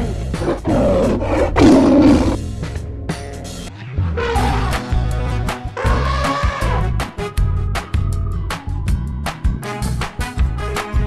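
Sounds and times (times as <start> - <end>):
background music: 0.0 - 11.0
cartoon dinosaur roar: 0.2 - 2.4, 5.8 - 6.8.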